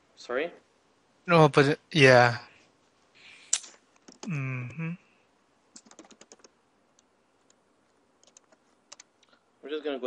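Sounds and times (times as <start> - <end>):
computer keyboard typing: 4.0 - 4.4, 5.8 - 6.6, 8.2 - 9.2.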